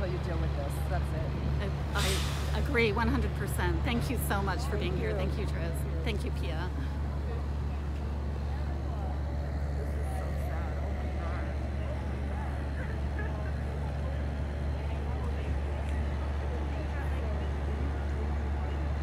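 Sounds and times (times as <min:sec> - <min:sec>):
faint voices: 0:00.0 - 0:19.0
low mechanical drone: 0:00.0 - 0:19.0.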